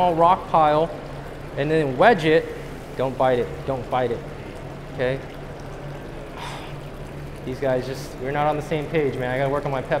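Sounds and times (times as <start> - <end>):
low even hum: 0.0 - 10.0
running water: 0.0 - 10.0.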